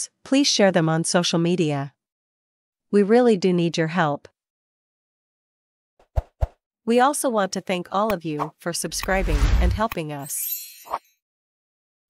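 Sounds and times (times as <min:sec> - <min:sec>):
person speaking: 0:07.0 - 0:10.5.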